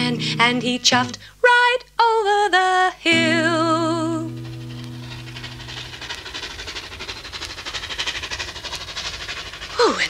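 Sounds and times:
steam locomotive chuffing: 3.1s - 10.0s.

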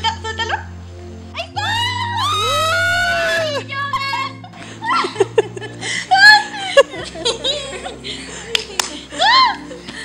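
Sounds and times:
background music: 0.0s - 10.0s
children laughing and squealing: 1.6s - 8.4s, 9.0s - 9.9s.

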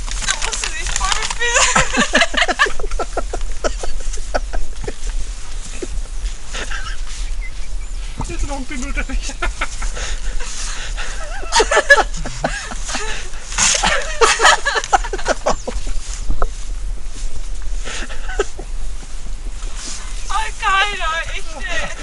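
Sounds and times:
people talking and laughing: 0.3s - 16.2s, 17.8s - 19.0s, 19.8s - 22.0s.

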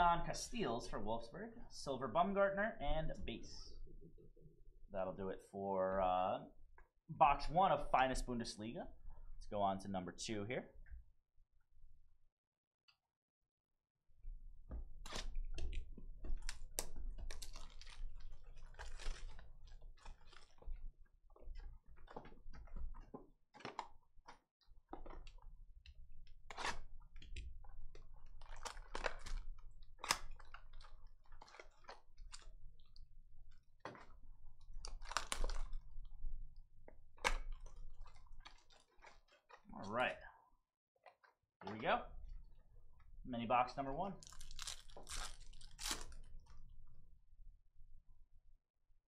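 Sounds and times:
plastic wrap crinkling: 16.3s - 25.5s, 26.3s - 36.4s, 37.0s - 39.7s, 44.2s - 46.6s.

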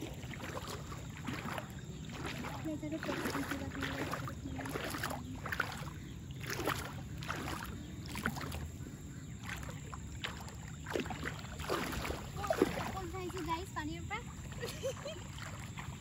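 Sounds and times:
water sloshing from wading: 0.0s - 16.0s.

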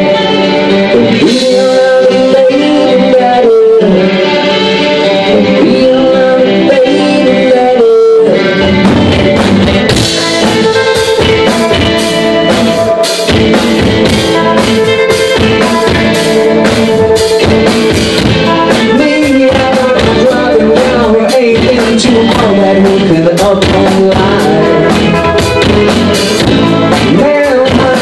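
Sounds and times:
harmonica lead line: 0.0s - 28.0s
rock band playing: 0.0s - 28.0s
drum beat: 8.8s - 28.0s.

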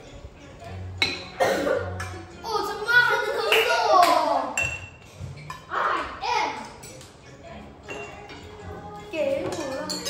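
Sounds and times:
children's excited voices: 2.4s - 4.6s
children laughing: 2.9s - 4.0s.

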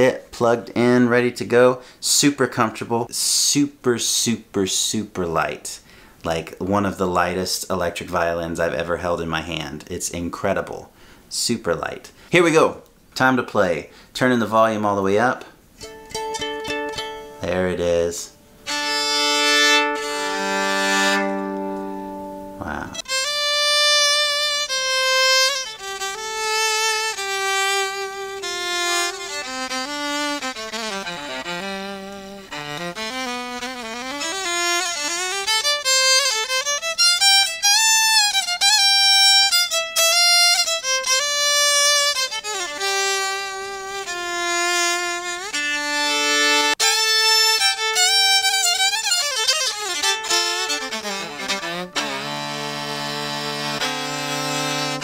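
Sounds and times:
electric violin melody: 15.8s - 17.6s, 18.6s - 55.0s.

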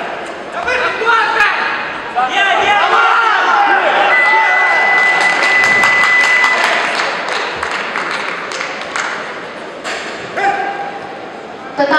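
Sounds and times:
crowd voices: 0.0s - 11.9s
crowd clapping: 4.6s - 9.5s.

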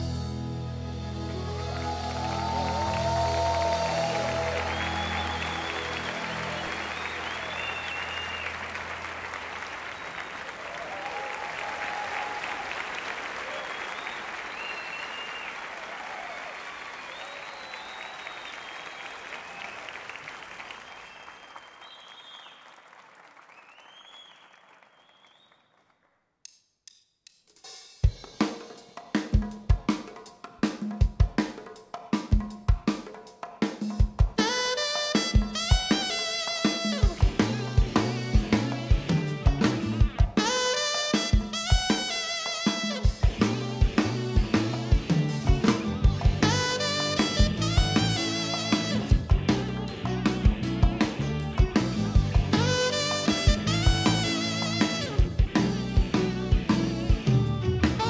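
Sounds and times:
conga rhythm: 1.2s - 12.4s, 26.8s - 58.0s
audience applauding: 1.3s - 26.1s.

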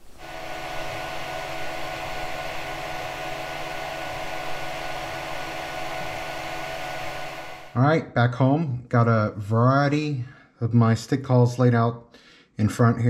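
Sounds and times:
printer cooling fans whirring: 0.0s - 7.8s.

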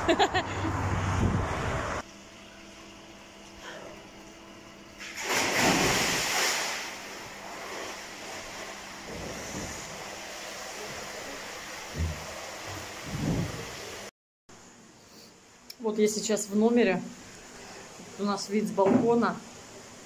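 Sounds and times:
loud splash of diver: 5.0s - 7.1s
water noise of swimming: 5.0s - 14.1s.

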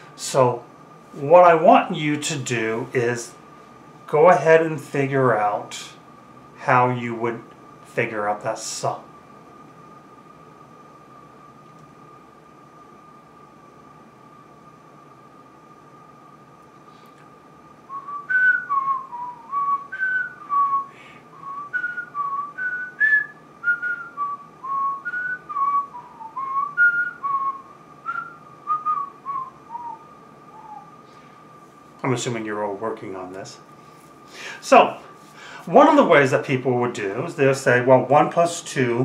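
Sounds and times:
person whistling a tune: 17.9s - 31.0s.

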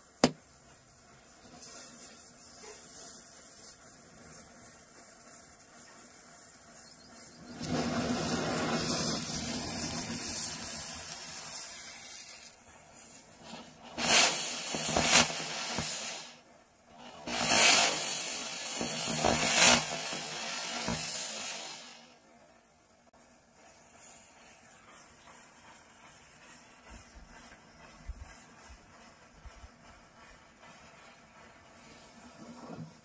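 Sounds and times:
matchsticks flaring with hiss: 0.0s - 22.2s, 23.1s - 33.0s
firecrackers hissing: 0.0s - 33.0s.

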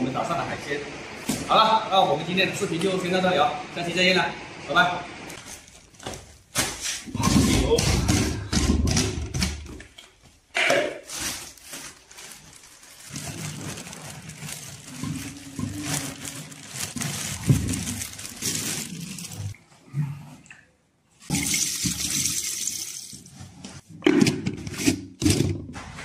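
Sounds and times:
plastic bag rustling: 5.4s - 7.4s, 11.0s - 19.6s.

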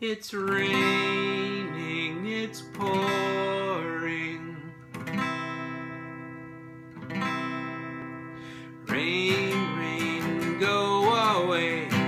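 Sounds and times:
acoustic guitar chords strummed: 0.0s - 12.0s.

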